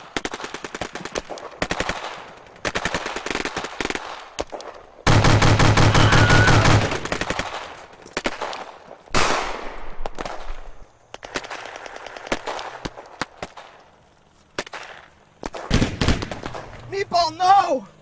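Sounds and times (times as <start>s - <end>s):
automatic gunfire: 5.0s - 8.6s, 14.7s - 16.7s.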